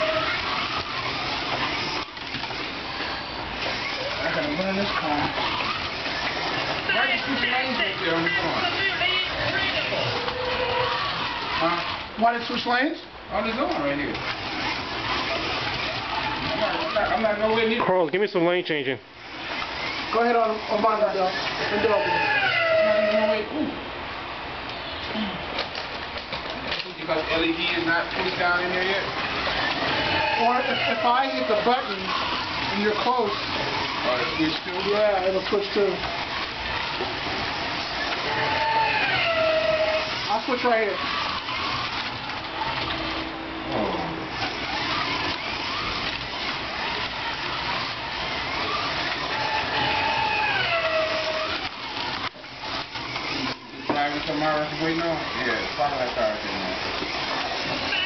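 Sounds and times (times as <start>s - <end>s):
people talking and calling out: 0.0s - 24.0s, 25.0s - 58.0s
slot car electric motors whirring: 0.0s - 58.0s.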